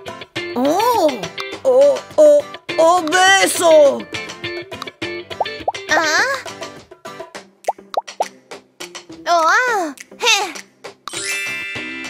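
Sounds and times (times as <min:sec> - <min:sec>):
light cartoon background music: 0:00.0 - 0:12.0
rising bloop plops: 0:05.4 - 0:05.9.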